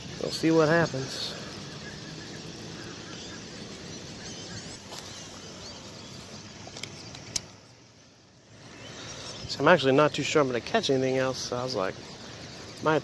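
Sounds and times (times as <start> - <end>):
small birds chirping: 0.0 - 13.0
sharp clicks: 6.7 - 7.6.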